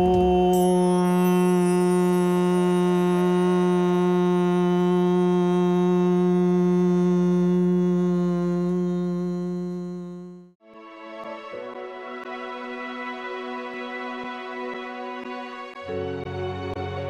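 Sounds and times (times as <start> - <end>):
sustained drone note: 0.6 - 10.6.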